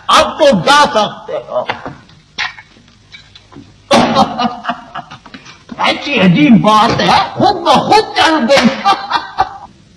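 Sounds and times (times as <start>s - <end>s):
man laughing: 3.9s - 5.4s, 8.5s - 9.7s.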